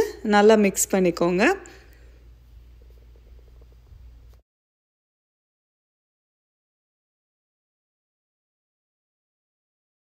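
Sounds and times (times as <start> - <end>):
low steady hum: 0.0 - 4.4.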